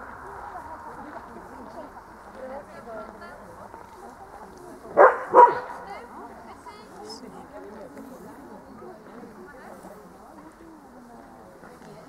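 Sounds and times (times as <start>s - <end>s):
dog barking: 5.0s - 5.9s.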